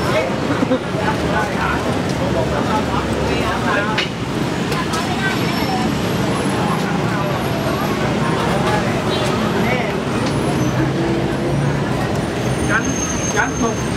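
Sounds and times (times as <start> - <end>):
people chattering: 0.0 - 13.9
road traffic: 0.0 - 13.9.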